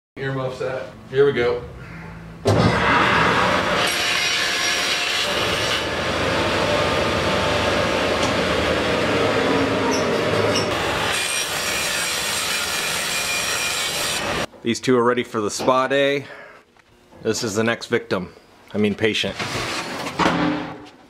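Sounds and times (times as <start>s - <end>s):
table saw cutting wood: 2.8s - 14.5s.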